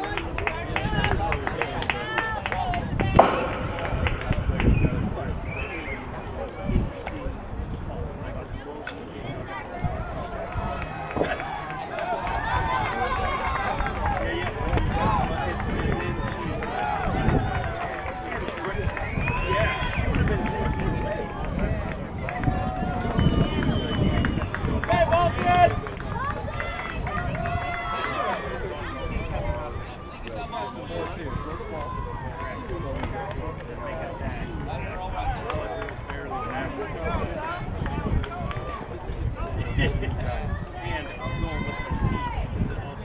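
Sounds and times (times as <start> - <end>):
wind rumble on microphone: 0.0 - 30.2, 30.8 - 43.0.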